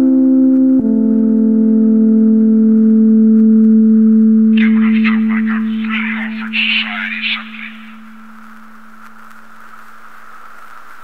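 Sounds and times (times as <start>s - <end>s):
sampled spoken voice: 4.6s - 8.3s.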